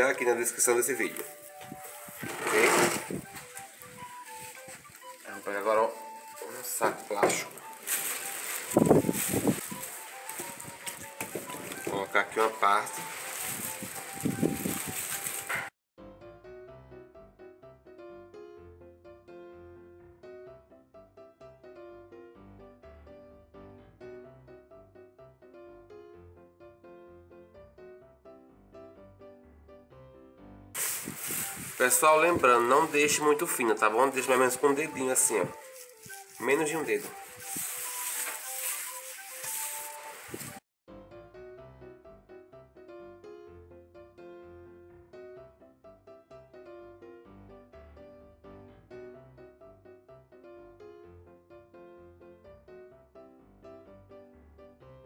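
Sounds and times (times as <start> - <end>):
soft piano music: 0.0 - 55.0.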